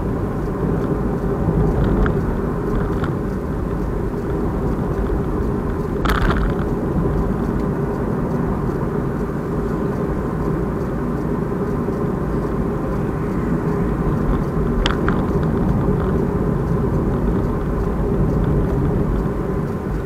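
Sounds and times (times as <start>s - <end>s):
car driving interior rumble: 0.0s - 20.0s.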